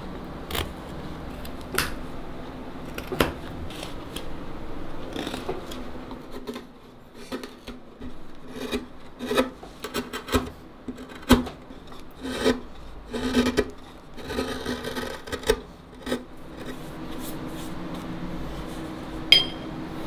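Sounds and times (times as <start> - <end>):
hand tool scraping wood: 5.1 - 17.8.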